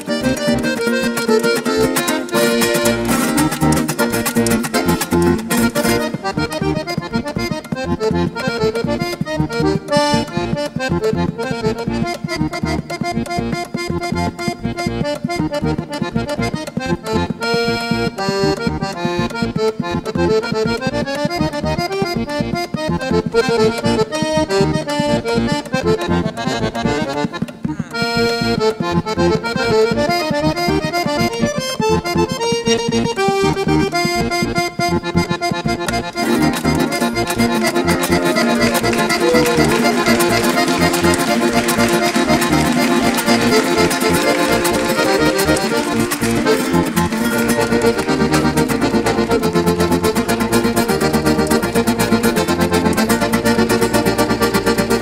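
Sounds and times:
accordion fast solo: 0:00.0 - 0:55.0
band playing: 0:00.0 - 0:55.0
bass line: 0:20.2 - 0:55.0.

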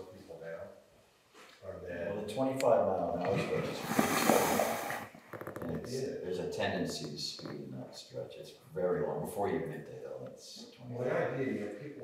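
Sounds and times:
people talking indistinctly: 0:01.6 - 0:04.6, 0:05.5 - 0:12.0.

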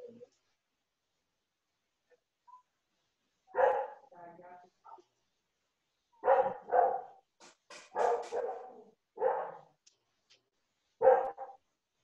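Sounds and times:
dog barking: 0:03.5 - 0:04.1, 0:06.2 - 0:07.2, 0:07.9 - 0:09.7, 0:11.0 - 0:11.6.

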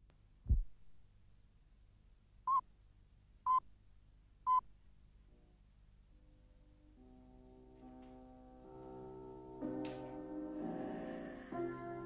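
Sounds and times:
faint low hum: 0:00.0 - 0:11.6
low thump: 0:00.4 - 0:00.7.

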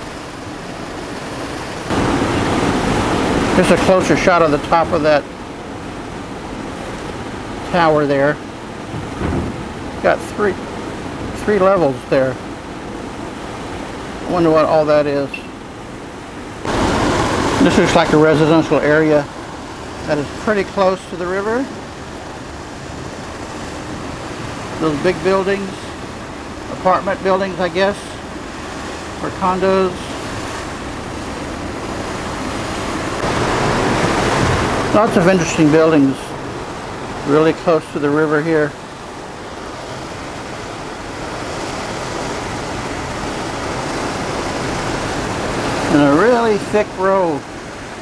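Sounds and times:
rushing wind and water: 0:00.0 - 0:48.0.

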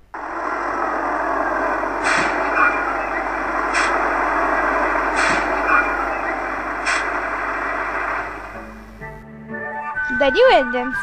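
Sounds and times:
model train running: 0:00.0 - 0:09.2.

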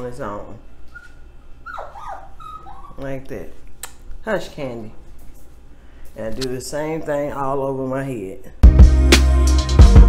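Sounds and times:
dog whining: 0:00.9 - 0:03.0.

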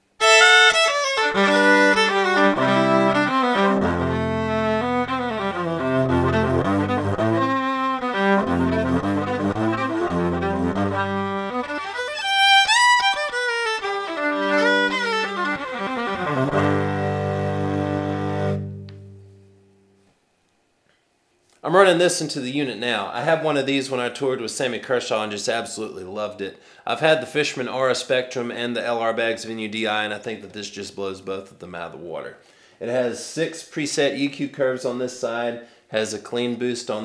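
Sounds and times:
bowed electric violin: 0:00.2 - 0:19.8.

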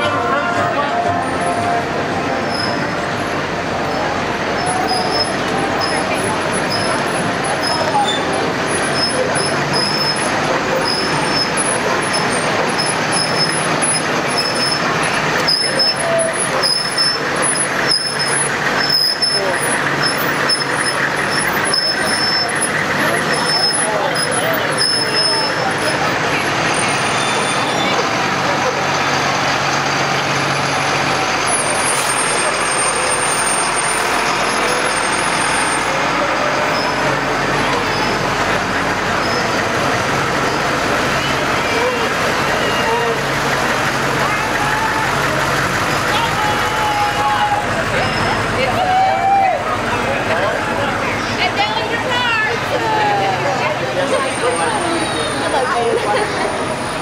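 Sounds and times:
crowd chatter: 0:00.0 - 0:57.0
military vehicles driving past: 0:00.0 - 0:57.0.

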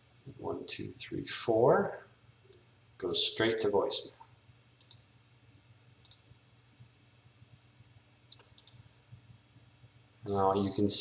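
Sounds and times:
low steady hum: 0:00.0 - 0:11.0
computer mouse clicks: 0:04.8 - 0:05.1, 0:06.0 - 0:06.4, 0:08.2 - 0:08.9.

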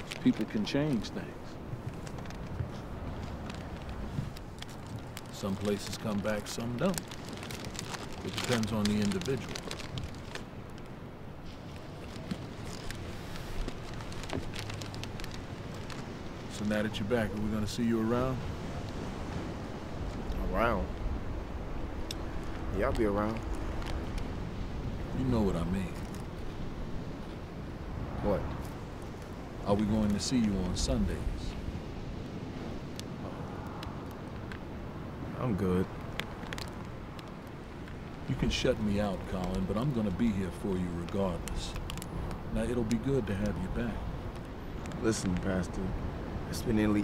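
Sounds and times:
light scattered crackles and ticks: 0:00.0 - 0:27.6, 0:28.4 - 0:47.0.

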